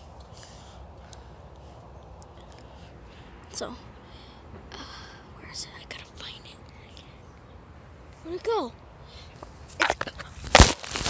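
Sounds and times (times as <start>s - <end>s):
person whispering: 4.8s - 7.2s.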